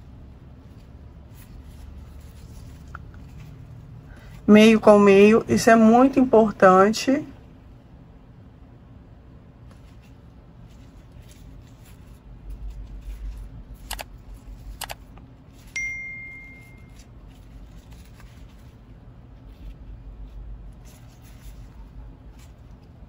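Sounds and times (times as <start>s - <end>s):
ribbon rustling: 0.0s - 4.6s, 9.6s - 23.0s
bright bell ding: 15.8s - 17.0s.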